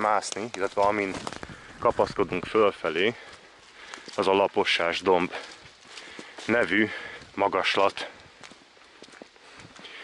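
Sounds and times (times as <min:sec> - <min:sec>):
footsteps crunching on dry leaves: 0:00.0 - 0:10.0.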